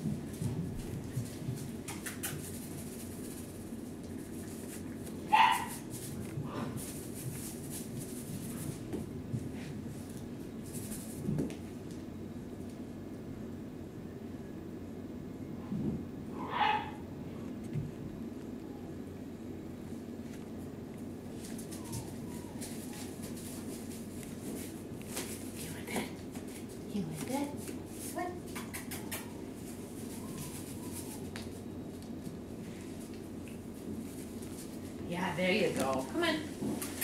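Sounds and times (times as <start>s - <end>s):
steady low hum: 0.0s - 37.0s
puppy clicking on hard floor: 0.1s - 2.9s, 28.4s - 29.4s, 36.6s - 37.0s
puppy high-pitched vocal sound: 21.8s - 23.2s.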